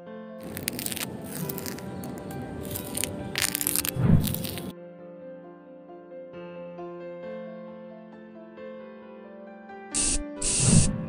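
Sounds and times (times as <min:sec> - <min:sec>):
gentle piano music: 0:00.0 - 0:11.0
knife scraping crunch effect: 0:00.4 - 0:04.7.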